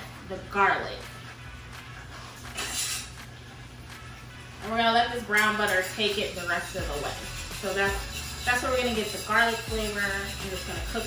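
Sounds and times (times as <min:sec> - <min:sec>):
low background music: 0:00.0 - 0:11.0.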